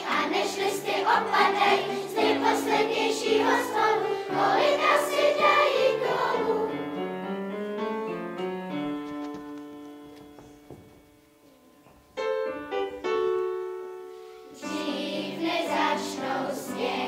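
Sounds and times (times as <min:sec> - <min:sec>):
children's choir singing: 0:00.0 - 0:07.1, 0:14.6 - 0:17.0
piano accompaniment: 0:00.0 - 0:17.0.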